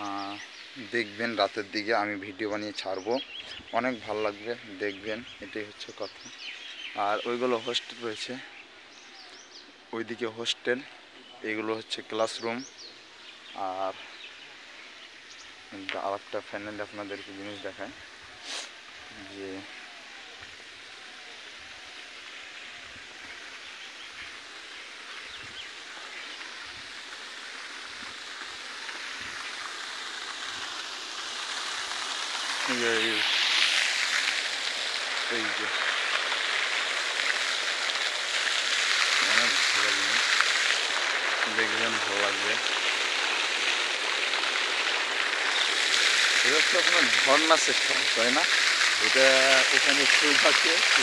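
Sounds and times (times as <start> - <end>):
fountain water splashing: 0.0 - 51.0
steady outdoor hiss: 0.0 - 51.0.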